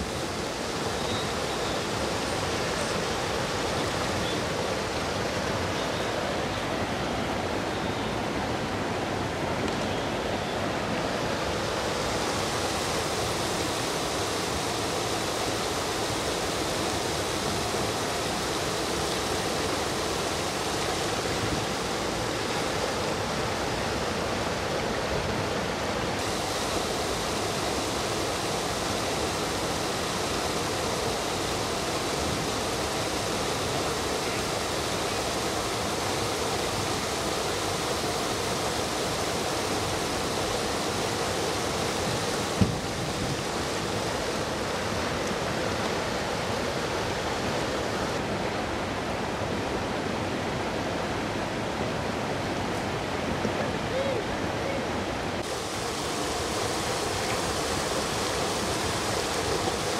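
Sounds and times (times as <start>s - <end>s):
river water rushing over rocks: 0.0s - 59.9s.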